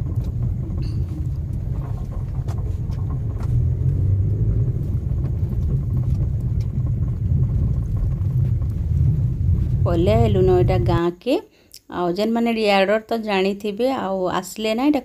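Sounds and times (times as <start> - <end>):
car driving on dirt road: 0.0 - 11.0.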